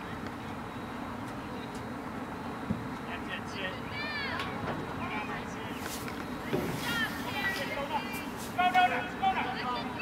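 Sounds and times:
distant high-pitched shouts: 0:03.8 - 0:04.6.

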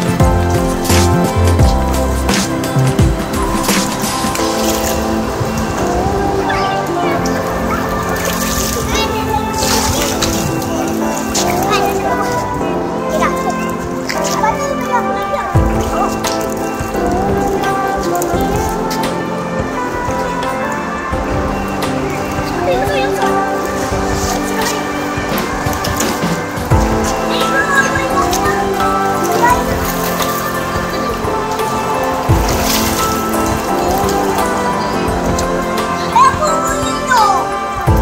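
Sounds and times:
music playing: 0:00.0 - 0:38.0
water splashing from feeding fish: 0:00.0 - 0:38.0.

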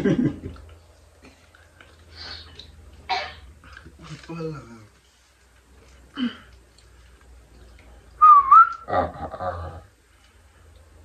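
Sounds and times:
faint room noise: 0:00.0 - 0:11.0
person whistling: 0:08.2 - 0:08.8.

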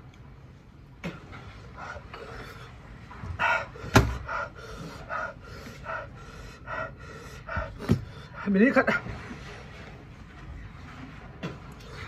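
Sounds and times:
person panting: 0:03.4 - 0:08.6.

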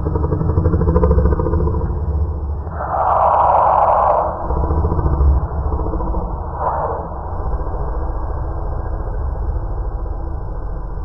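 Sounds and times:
heavy low rumble: 0:00.0 - 0:11.0.

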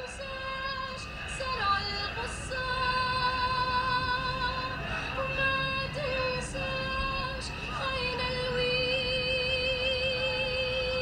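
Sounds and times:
woman singing long notes: 0:00.0 - 0:11.0.

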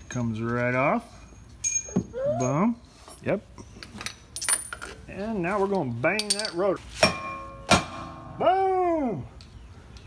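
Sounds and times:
metal tools clinking: 0:01.2 - 0:07.7.

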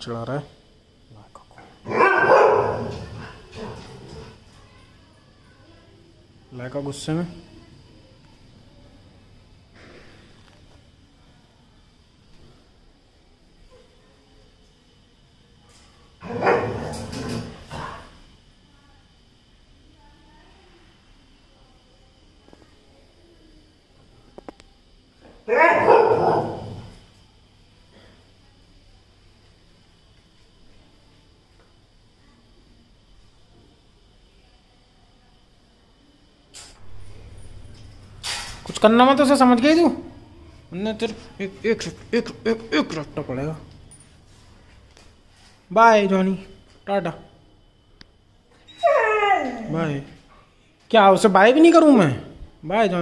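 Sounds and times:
dog barking: 0:01.8 - 0:03.8, 0:16.2 - 0:17.1, 0:25.5 - 0:26.9.

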